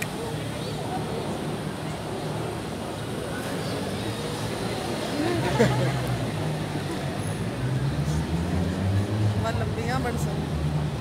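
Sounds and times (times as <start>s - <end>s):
faint crowd voices: 0.0s - 11.0s
traffic engine rumble: 0.0s - 11.0s.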